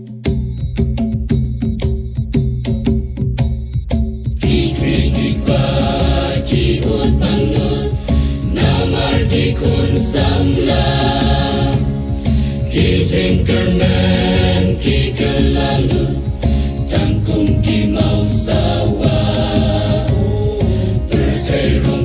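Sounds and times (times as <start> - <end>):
choir singing with instruments: 4.4 - 22.0.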